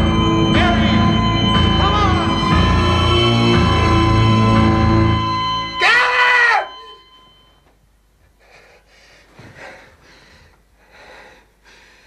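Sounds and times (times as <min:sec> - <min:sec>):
loud pitched rising and falling sound: 0:00.0 - 0:07.0
heavy breathing: 0:08.3 - 0:12.0.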